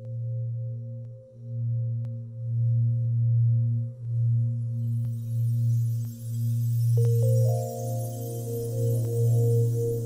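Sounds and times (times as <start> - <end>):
low sustained musical drone: 0.0 - 10.0.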